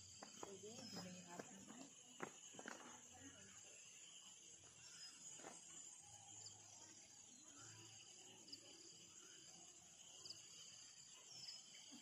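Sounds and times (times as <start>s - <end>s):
steady high hum: 0.0s - 12.0s.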